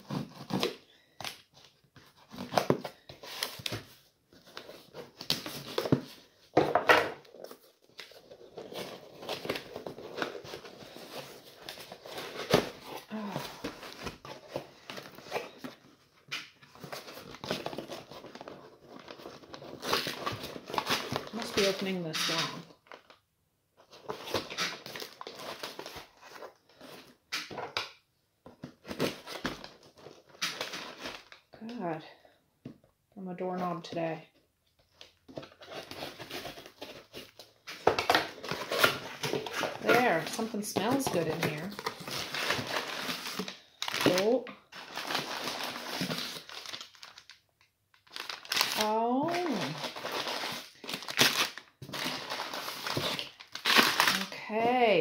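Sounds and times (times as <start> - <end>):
tissue paper crinkling: 16.6 - 23.0, 35.5 - 47.4, 48.0 - 55.0
cardboard flaps tearing: 48.1 - 54.8.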